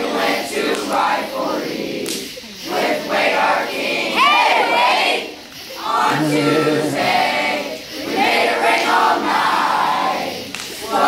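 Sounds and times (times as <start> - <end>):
children shouting and chanting: 0.8 - 11.0.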